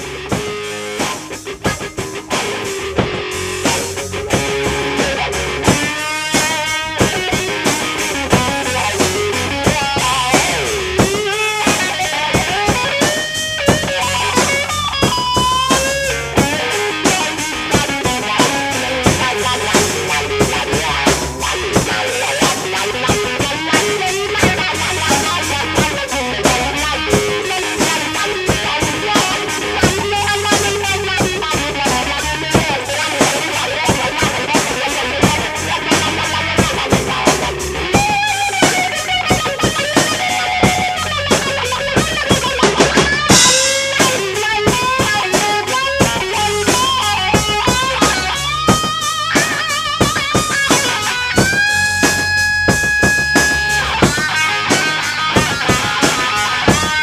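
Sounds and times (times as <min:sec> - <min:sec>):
drum kit: 0:00.0 - 0:57.0
electric guitar with wah pedal: 0:00.0 - 0:57.0
cymbal crash: 0:43.2 - 0:57.0.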